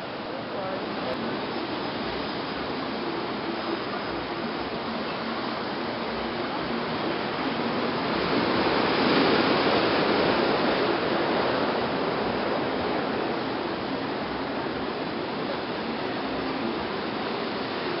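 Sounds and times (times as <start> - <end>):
ocean surf breaking on rocks: 0.0 - 18.0.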